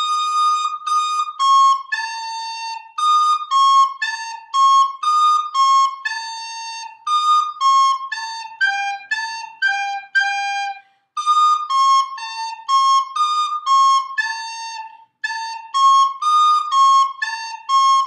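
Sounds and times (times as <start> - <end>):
recorder playing blues melody: 0.0 - 18.0.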